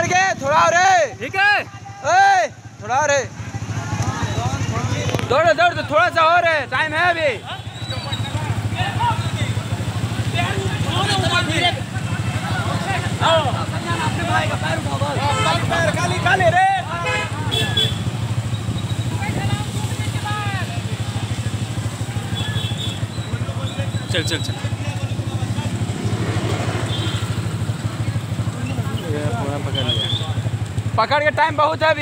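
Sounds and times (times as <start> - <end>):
distant voices calling out: 0.0 - 31.0.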